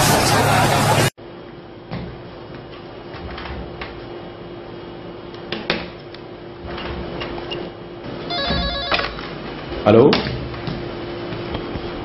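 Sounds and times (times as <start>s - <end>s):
electronic telephone ringing: 8.3s - 9.3s.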